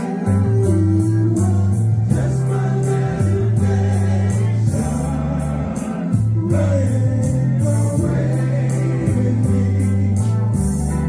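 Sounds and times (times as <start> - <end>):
bass line: 0.0 - 11.0
male vocal group singing in harmony: 0.0 - 11.0
drums keeping a steady beat: 5.8 - 8.4.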